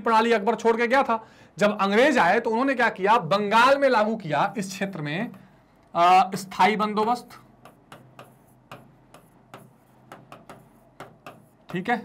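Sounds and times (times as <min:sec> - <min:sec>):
marker pen scratching whiteboard: 0:06.4 - 0:12.0.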